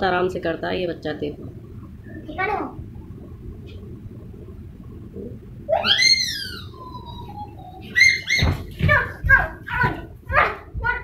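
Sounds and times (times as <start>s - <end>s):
child squealing: 5.7s - 8.6s
child shouting rhythmic syllables: 8.0s - 11.0s.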